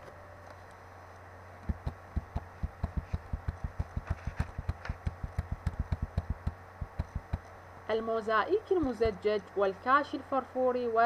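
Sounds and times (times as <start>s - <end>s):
steady low hum: 0.0s - 11.0s
mouse scroll wheel thumps: 1.7s - 7.5s.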